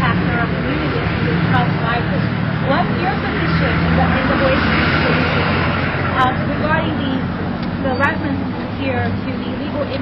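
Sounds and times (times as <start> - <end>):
road noise: 0.0 - 10.0
vehicle engine humming: 0.0 - 10.0.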